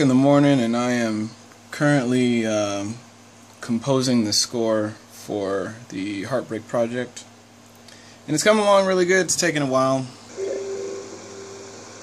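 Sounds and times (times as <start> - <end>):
fainter higher tone: 10.4 - 12.0.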